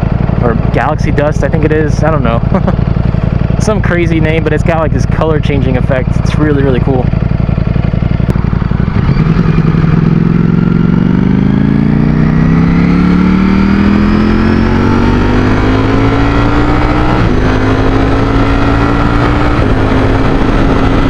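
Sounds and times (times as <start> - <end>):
motorcycle engine accelerating: 0.0 - 21.0.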